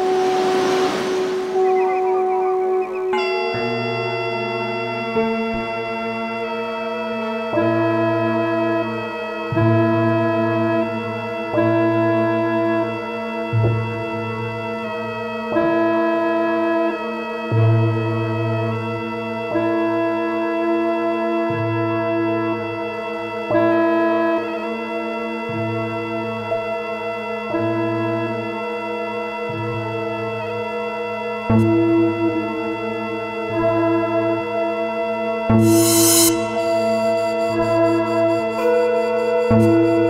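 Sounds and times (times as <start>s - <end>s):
electronic drone: 0.0s - 14.5s, 29.7s - 40.0s
synth notes switching on and off: 35.5s - 40.0s.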